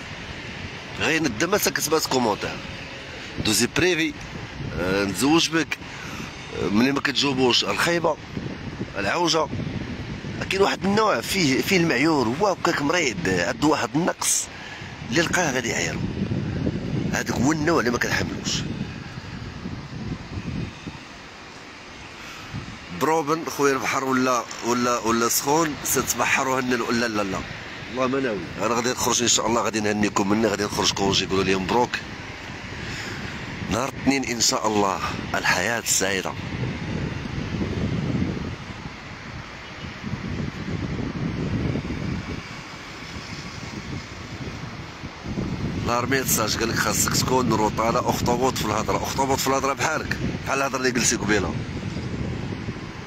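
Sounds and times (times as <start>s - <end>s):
faint steady hiss: 0.0s - 48.2s
wind buffeting microphone: 0.0s - 53.0s.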